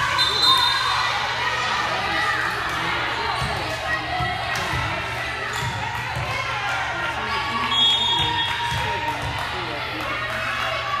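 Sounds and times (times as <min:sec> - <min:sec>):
murmur of voices in echoing gym: 0:00.0 - 0:11.0
volleyball bouncing on wooden floor: 0:03.3 - 0:06.8, 0:07.8 - 0:09.6.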